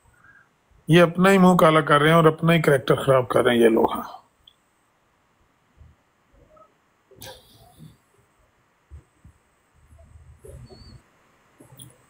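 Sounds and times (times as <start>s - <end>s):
low muffled rumbling: 8.8s - 11.8s.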